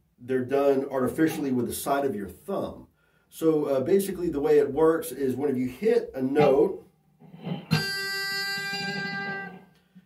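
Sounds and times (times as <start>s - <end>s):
electric guitar pinched harmonic: 7.4s - 9.7s.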